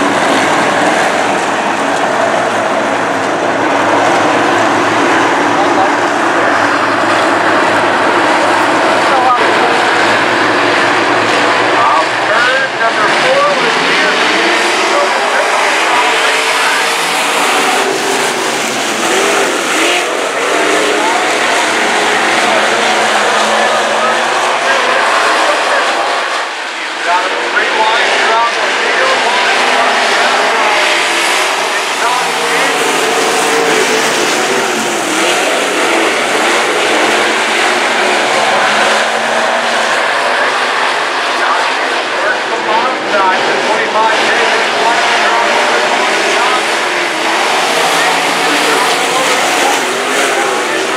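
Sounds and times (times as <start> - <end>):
race car engines revving: 0.0 - 50.9.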